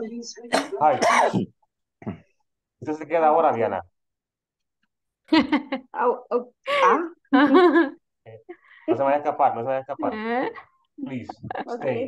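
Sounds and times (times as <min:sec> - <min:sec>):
person speaking over a video call: 0:08.3 - 0:12.0.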